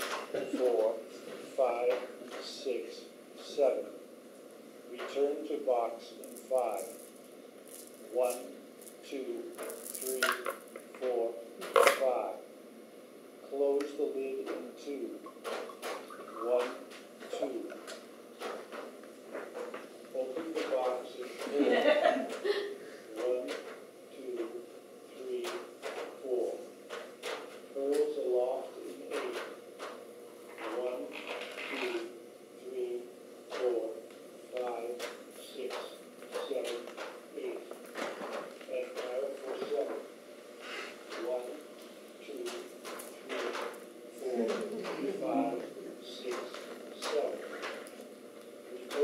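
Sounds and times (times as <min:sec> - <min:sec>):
people talking quietly: 0:00.0 - 0:03.9, 0:41.0 - 0:47.9.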